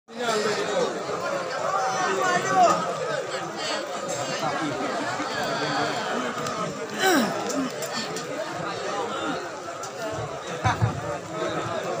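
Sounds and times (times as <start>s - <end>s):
crowd chatter: 0.1s - 12.0s.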